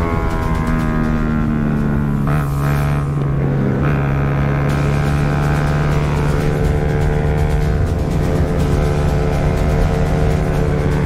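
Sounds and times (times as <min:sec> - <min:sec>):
background music with bass: 0:00.0 - 0:11.0
motorcycle engine: 0:00.0 - 0:11.0.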